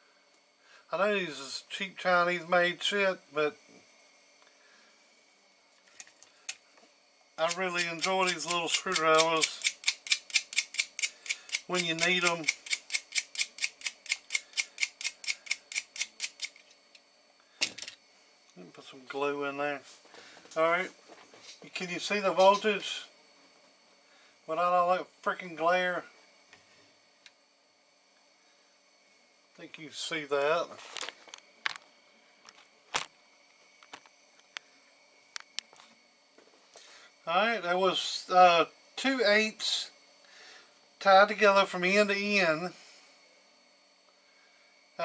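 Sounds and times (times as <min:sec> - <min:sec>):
rapid mechanical clicking: 0:07.4 - 0:16.7.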